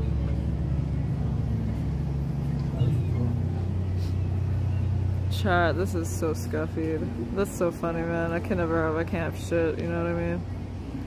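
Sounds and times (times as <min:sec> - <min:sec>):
low mechanical drone: 0:00.0 - 0:11.0.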